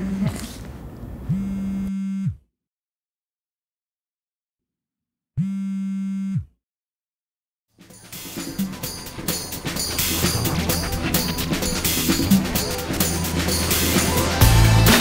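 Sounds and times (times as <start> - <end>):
phone vibrating buzz: 1.3 - 2.5, 5.4 - 6.6
music with drum kit: 7.8 - 15.0.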